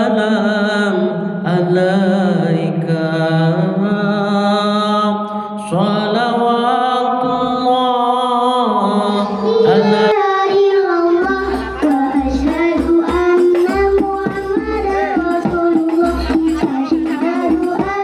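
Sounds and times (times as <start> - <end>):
voices singing a devotional song: 0.0 - 18.0
frame drum beats: 11.0 - 18.0.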